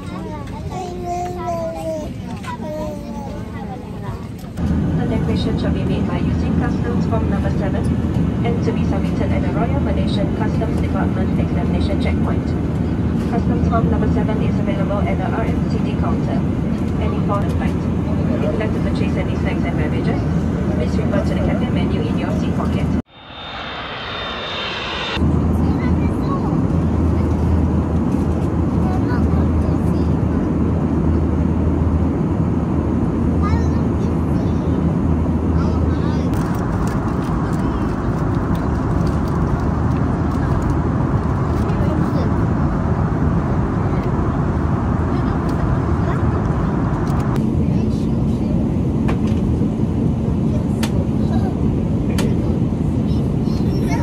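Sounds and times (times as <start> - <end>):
jet cabin engine roar: 3.3 - 54.0
low hum: 18.7 - 28.3, 36.4 - 47.5.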